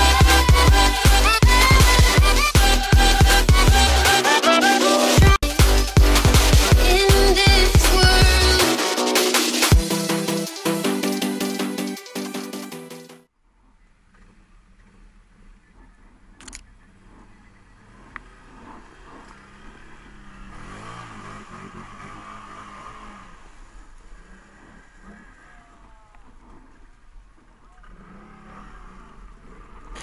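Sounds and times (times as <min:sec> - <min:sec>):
atv engine revving: 0:00.0 - 0:09.8, 0:13.5 - 0:30.0.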